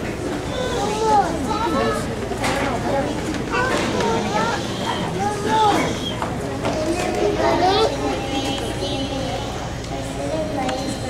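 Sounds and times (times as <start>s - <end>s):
children speaking in a hall: 0.0s - 11.0s.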